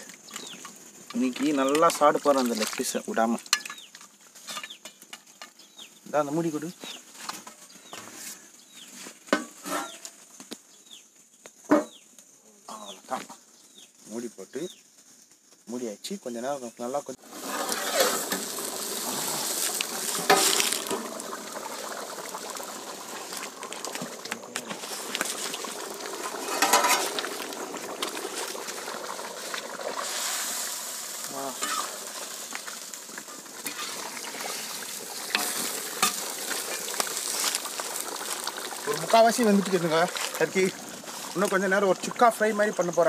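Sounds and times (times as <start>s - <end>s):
curry bubbling and sizzling: 0.0s - 8.0s, 17.2s - 43.0s.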